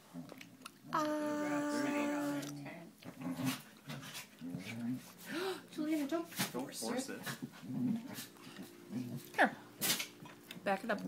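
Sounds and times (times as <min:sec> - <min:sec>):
baby whimpering: 0:00.9 - 0:02.5.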